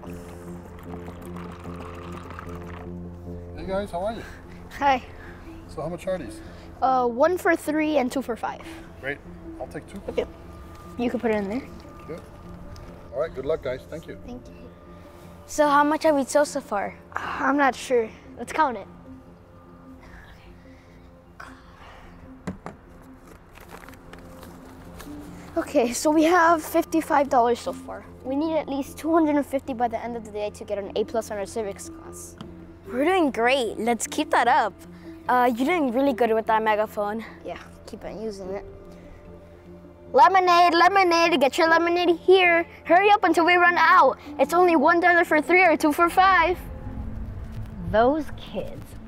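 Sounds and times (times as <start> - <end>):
background music with held notes: 0.0 - 49.0
liquid pouring into plastic cup: 0.6 - 2.9.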